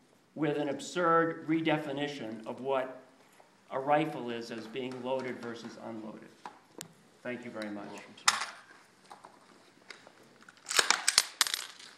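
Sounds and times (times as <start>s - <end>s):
metallic clicks and rattles: 10.4s - 11.9s.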